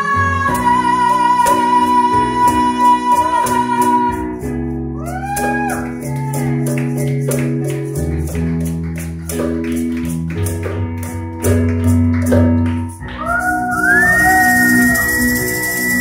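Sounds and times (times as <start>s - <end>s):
keyboard playing slow ballad: 0.0s - 16.0s
audience clapping: 5.6s - 16.0s
audience cheering: 13.1s - 16.0s
long rising whistle: 13.4s - 16.0s.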